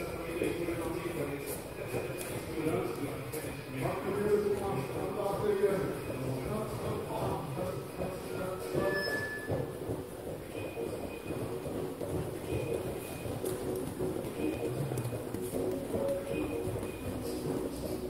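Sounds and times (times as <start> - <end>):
background music: 0.0 - 18.0
bare footsteps on foam mats: 0.0 - 18.0.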